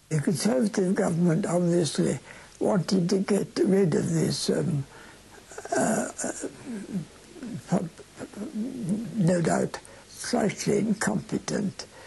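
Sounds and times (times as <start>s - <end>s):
elderly man murmuring: 0.2s - 12.0s.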